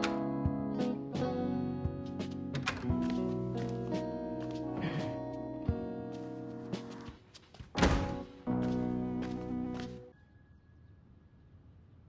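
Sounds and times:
background music: 0:00.0 - 0:07.2, 0:07.8 - 0:10.6
heavy door shutting: 0:02.5 - 0:03.2, 0:07.8 - 0:08.4.

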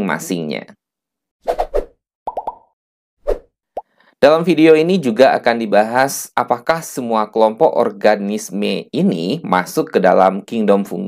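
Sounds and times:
cartoon pop: 0:02.3 - 0:02.7.

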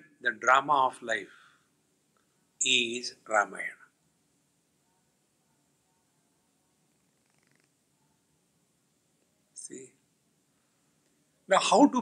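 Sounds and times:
faint rough sound: 0:06.6 - 0:08.4.

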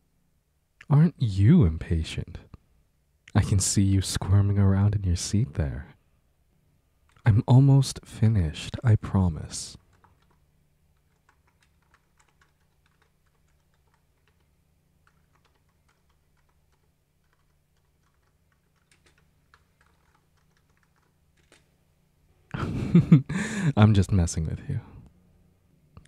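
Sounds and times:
low steady hum: 0:00.0 - 0:26.0
typing on computer keyboard: 0:09.8 - 0:10.4, 0:11.0 - 0:21.7.

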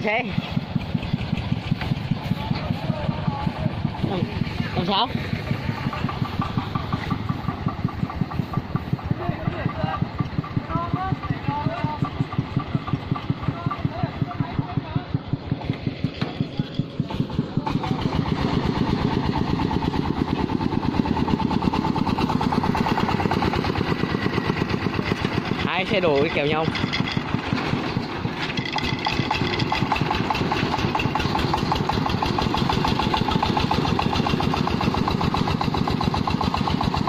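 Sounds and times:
diesel tractor engine chugging: 0:00.0 - 0:37.0.

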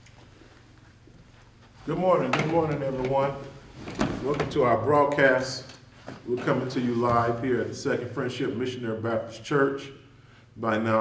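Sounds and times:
man speaking close to microphone: 0:01.8 - 0:03.6, 0:04.2 - 0:11.0.

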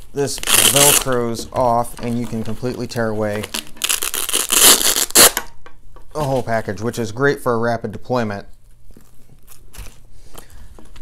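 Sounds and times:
velcro flap crackling: 0:00.2 - 0:05.5.

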